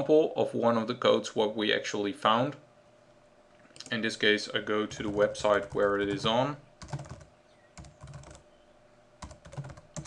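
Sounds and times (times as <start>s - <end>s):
faint typing on a keyboard: 3.5s - 8.5s, 9.2s - 10.0s.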